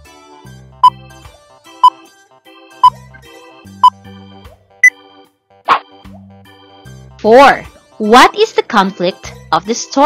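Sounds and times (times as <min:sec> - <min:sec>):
light keyboard music: 0:00.0 - 0:10.0
short pop sound effect: 0:05.7 - 0:06.0.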